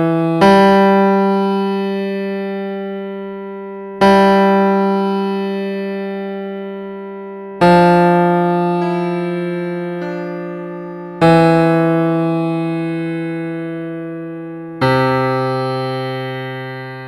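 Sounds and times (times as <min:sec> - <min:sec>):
piano low notes: 0:06.7 - 0:17.0.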